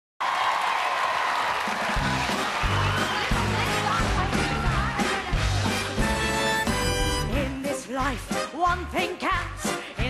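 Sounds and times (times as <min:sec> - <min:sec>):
audience applauding: 0:00.2 - 0:06.6.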